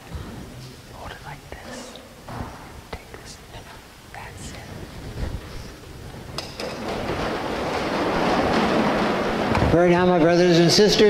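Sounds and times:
person whispering: 0.9 - 2.2, 2.9 - 5.0.

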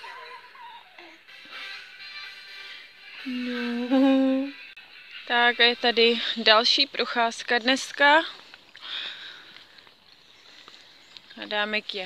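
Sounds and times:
low outdoor background: 0.0 - 12.0
woman speaking: 11.4 - 12.0.

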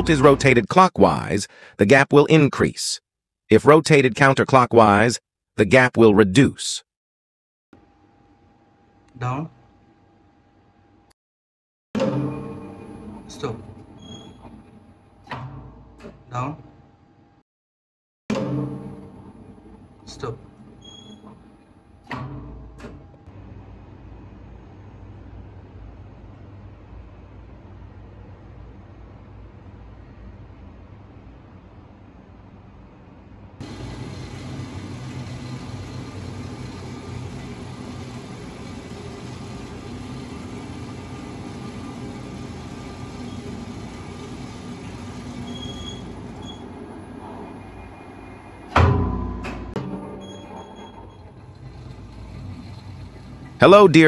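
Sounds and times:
elevator machine running: 12.0 - 16.1, 18.3 - 23.2, 33.6 - 54.0.

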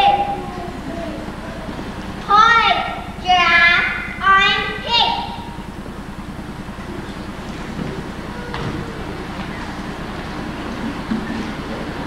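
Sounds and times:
child calling: 0.0 - 5.5
steady low hum: 0.0 - 12.0.

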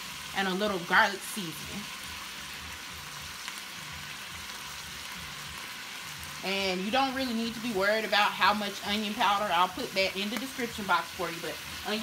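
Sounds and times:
sausage and vegetables sizzling in a pot: 0.0 - 12.0.

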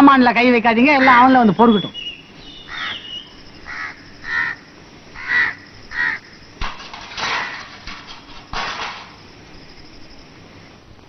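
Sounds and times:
crow cawing: 2.6 - 6.4.

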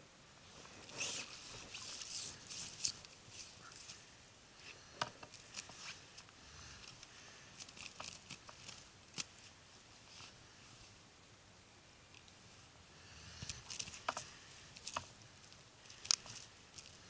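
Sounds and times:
fishing gear clicks and rustles: 0.8 - 4.0, 5.0 - 9.6, 13.5 - 17.0.

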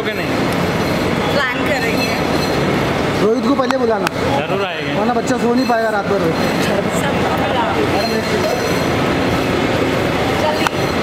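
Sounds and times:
overlapping distant voices: 0.0 - 11.0
rumbling hall noise: 0.0 - 11.0.

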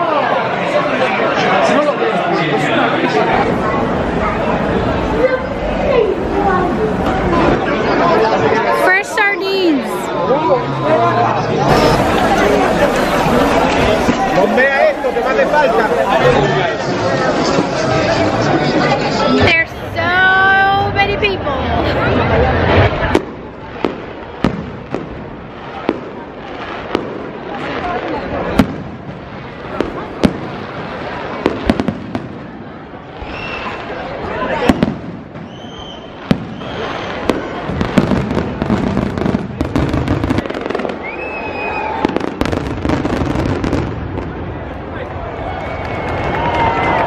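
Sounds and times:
fireworks bangs: 2.6 - 10.1, 11.6 - 47.0
fireworks whistles: 11.6 - 16.6, 33.1 - 34.0, 34.6 - 43.8.

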